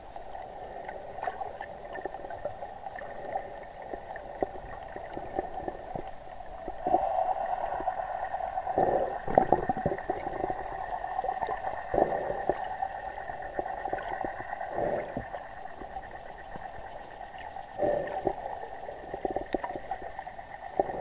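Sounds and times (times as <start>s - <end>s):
steady underwater hum: 0.0s - 21.0s
water gurgling: 0.0s - 21.0s
crackling clicks: 9.2s - 21.0s.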